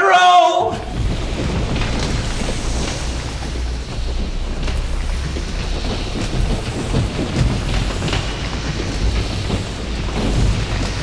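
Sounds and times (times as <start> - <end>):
deep rumble with hiss: 0.6 - 11.0.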